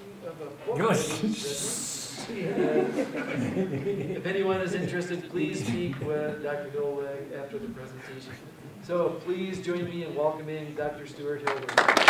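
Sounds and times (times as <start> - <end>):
man speaking: 0.6 - 2.5, 4.0 - 11.3.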